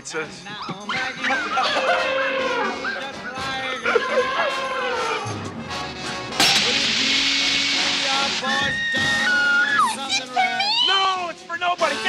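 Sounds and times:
sharp strike: 6.4 - 8.2
water jet hissing: 6.4 - 9.4.

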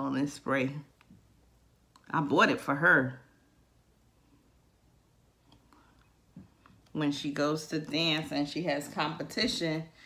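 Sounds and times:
person speaking: 6.9 - 10.0.

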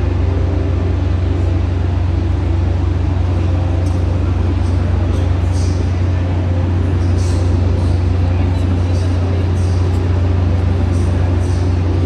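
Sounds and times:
loud low hum: 0.0 - 12.0.

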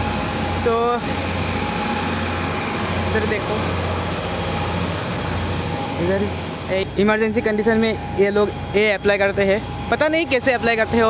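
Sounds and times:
ferry engine drone: 0.0 - 11.0.

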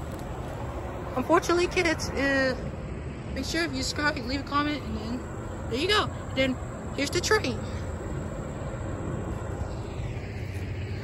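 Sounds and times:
distant diesel train rumble: 0.0 - 11.0.

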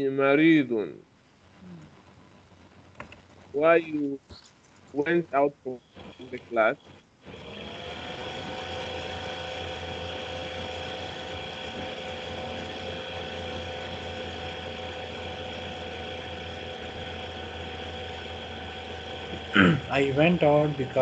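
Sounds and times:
machine hum: 0.0 - 21.0
steady pitched tones: 0.0 - 21.0.

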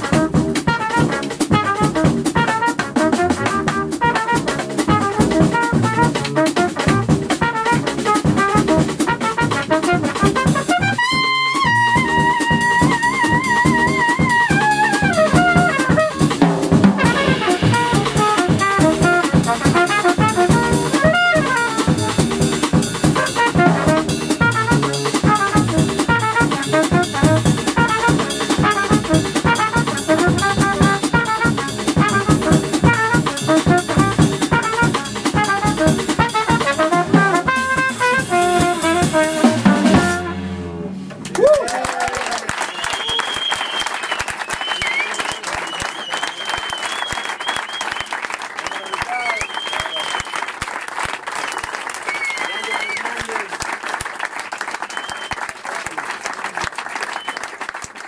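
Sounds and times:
trumpet: 0.0 - 41.0
double bass: 0.0 - 41.3
drum kit: 0.0 - 41.6
audience applauding: 41.2 - 58.0.

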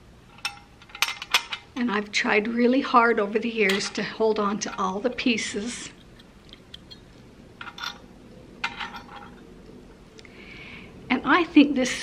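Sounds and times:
metal pots scraping: 8.6 - 9.5.

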